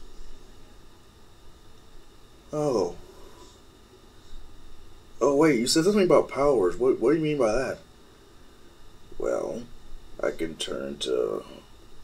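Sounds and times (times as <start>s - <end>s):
faint steady hiss: 0.0s - 12.0s
low hum: 0.0s - 12.0s.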